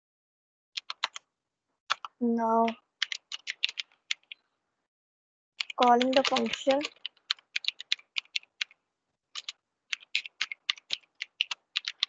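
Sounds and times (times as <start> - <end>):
keyboard keys clicking: 0.8 - 1.2, 1.9 - 4.4, 5.6 - 12.0.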